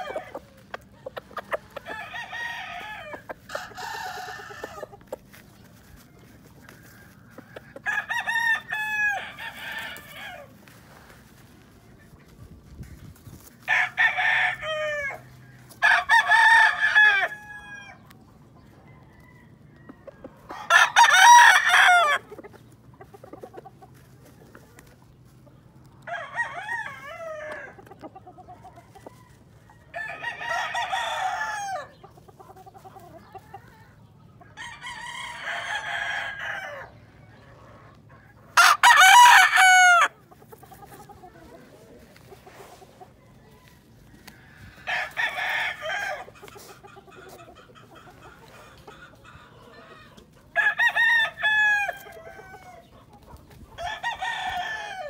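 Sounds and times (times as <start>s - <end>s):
roosters crowing: 0.0s - 24.9s, 25.8s - 55.0s.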